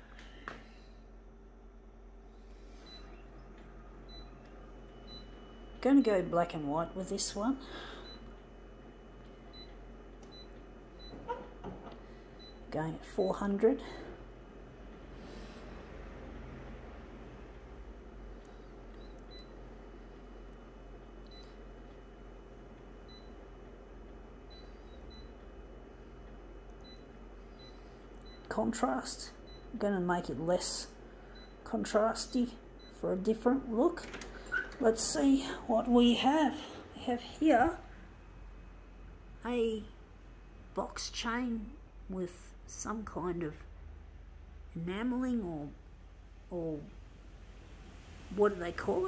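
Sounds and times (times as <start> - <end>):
copier humming: 0.0 - 49.0.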